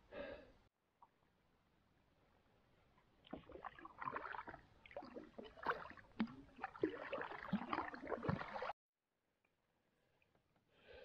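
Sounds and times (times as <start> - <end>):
kayak paddle splashing water: 3.2 - 8.8.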